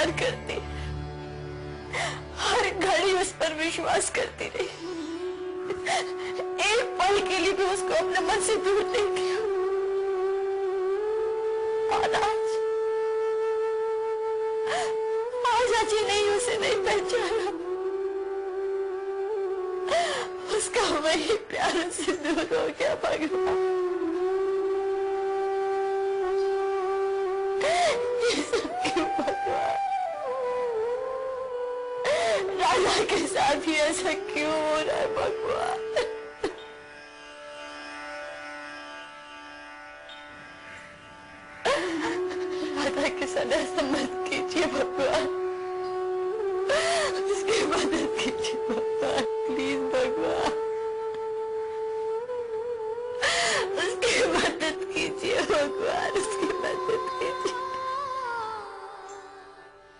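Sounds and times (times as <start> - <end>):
background music note: 0.0 - 59.9
woman sobbing and wailing: 3.8 - 9.6, 14.6 - 17.7, 19.8 - 23.3, 27.5 - 30.2, 32.0 - 36.6, 41.6 - 45.4, 46.7 - 50.6, 53.1 - 59.0
woman wailing sobs: 27.6 - 29.9, 41.7 - 43.0, 46.7 - 49.8, 53.2 - 57.8.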